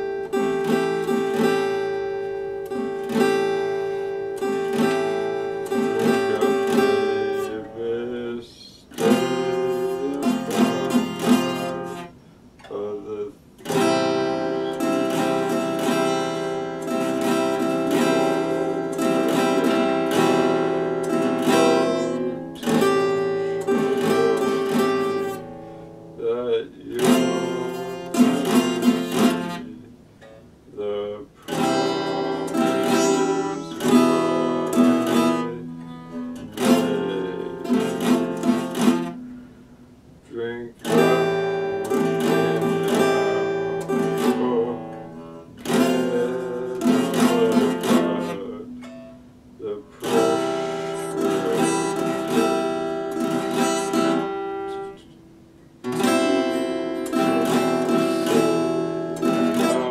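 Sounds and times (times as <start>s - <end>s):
acoustic guitar strummed: 0.0s - 59.9s
man singing: 4.7s - 12.0s, 12.6s - 25.4s, 26.2s - 29.9s, 30.7s - 39.2s, 40.2s - 49.0s, 49.6s - 55.1s, 55.8s - 59.9s.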